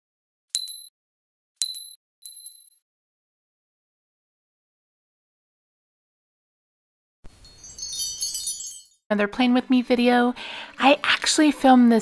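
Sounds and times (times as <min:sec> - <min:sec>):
glass bauble bouncing dings: 0:00.6 - 0:00.9, 0:01.6 - 0:02.8, 0:07.6 - 0:09.0.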